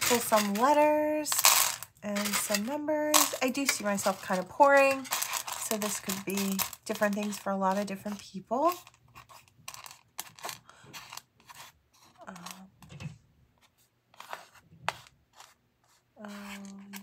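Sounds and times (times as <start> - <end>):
wooden tiles clicking and scraping: 0.0 - 17.0.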